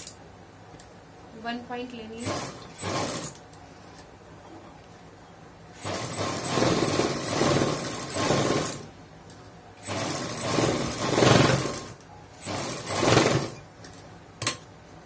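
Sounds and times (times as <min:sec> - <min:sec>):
sewing machine stitching: 0:02.2 - 0:03.4, 0:05.8 - 0:08.9, 0:09.8 - 0:13.6.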